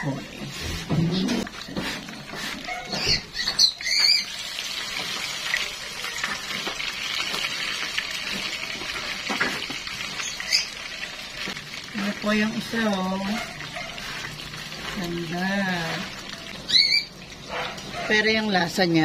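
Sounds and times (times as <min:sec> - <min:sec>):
hot oil sizzling: 0:00.0 - 0:19.0.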